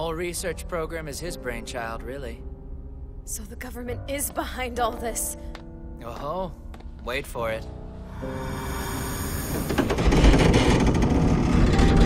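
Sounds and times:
wall crumbling rumble: 0:09.6 - 0:12.0.

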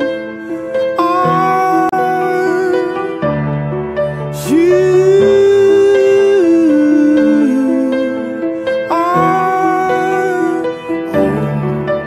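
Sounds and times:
man singing long note: 0:00.0 - 0:03.2, 0:04.4 - 0:12.0.

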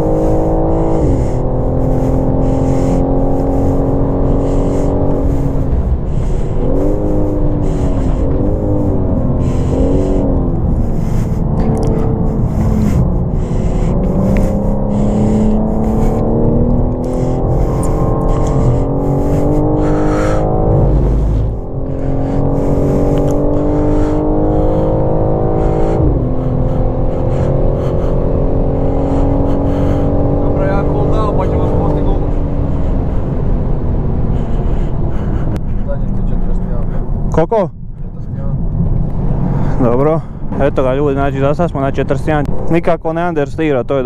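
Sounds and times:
car engine accelerating: 0:00.0 - 0:44.0.

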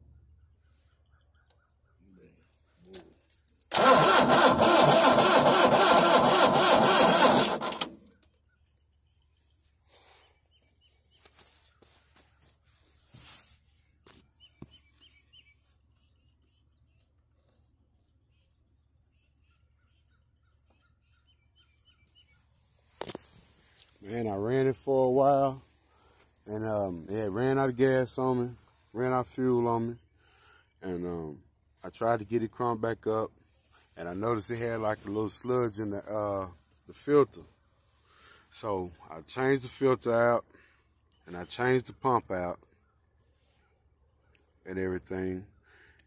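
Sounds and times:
starter cranking tractor engine: 0:03.7 - 0:08.2.

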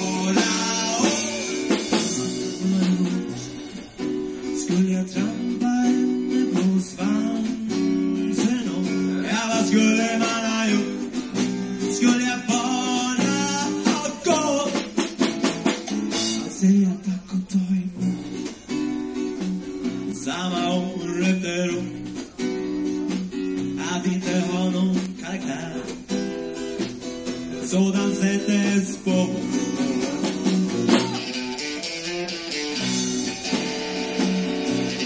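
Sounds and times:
person singing: 0:00.0 - 0:03.8, 0:04.4 - 0:11.1, 0:20.1 - 0:22.2, 0:23.7 - 0:26.1
rock band playing live: 0:00.0 - 0:35.0.

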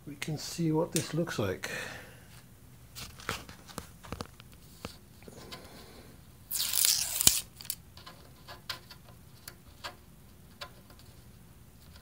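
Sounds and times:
tape ripping off metal: 0:06.5 - 0:07.8.

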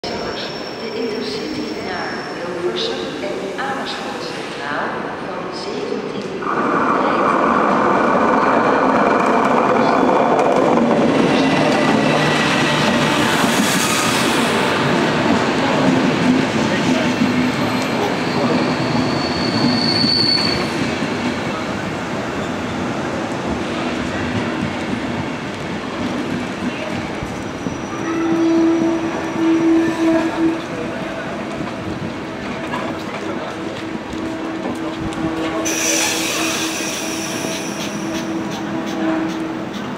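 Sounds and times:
train wheel squeal: 0:00.1 - 0:02.6, 0:17.0 - 0:20.9, 0:27.3 - 0:30.6, 0:35.6 - 0:39.9
train wheels rolling on rails: 0:05.6 - 0:39.9.

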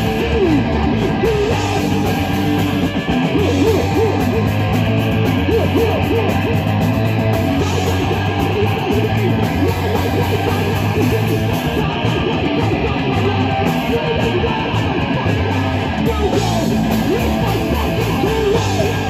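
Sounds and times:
distorted electric guitar: 0:00.0 - 0:19.0
drums: 0:00.0 - 0:19.0
electric bass: 0:00.0 - 0:19.0.

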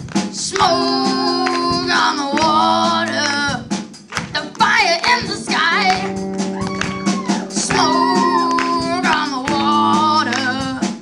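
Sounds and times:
drum kit: 0:00.0 - 0:11.0
rock guitar: 0:00.0 - 0:11.0
boy singing into a microphone: 0:00.4 - 0:03.7, 0:07.5 - 0:11.0.

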